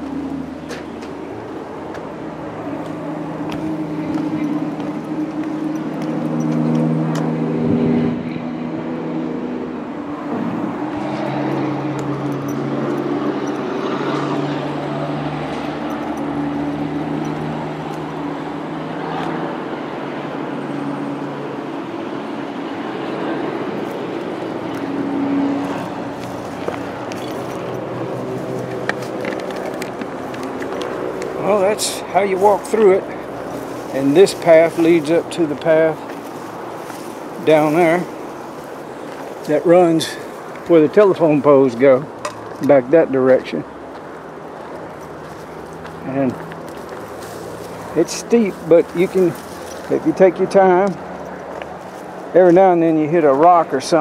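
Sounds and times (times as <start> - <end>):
walking through brush: 0.0 - 7.2, 23.3 - 41.5, 43.6 - 52.8
vehicle engines droning: 0.0 - 54.0.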